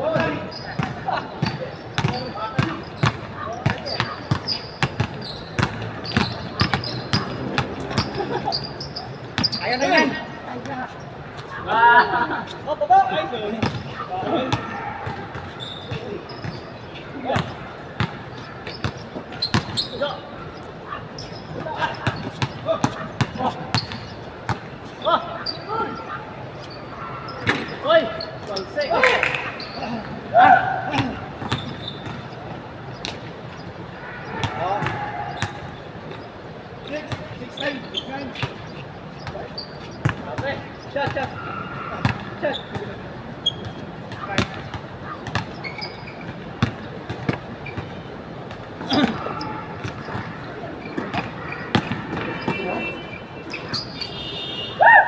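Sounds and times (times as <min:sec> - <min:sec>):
players shouting: 0:00.0 - 0:10.7, 0:11.5 - 0:32.9, 0:33.8 - 0:35.9, 0:48.8 - 0:55.0
basketball bouncing on hard court: 0:00.2 - 0:08.2, 0:13.6 - 0:13.9, 0:17.3 - 0:19.9, 0:21.2 - 0:24.7, 0:30.9 - 0:32.4, 0:34.3 - 0:35.6, 0:42.0 - 0:52.7.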